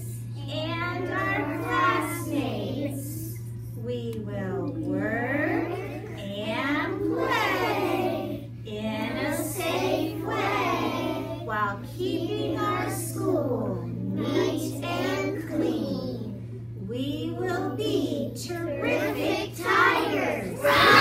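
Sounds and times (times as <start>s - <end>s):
children singing in unison: 20.6s - 21.0s.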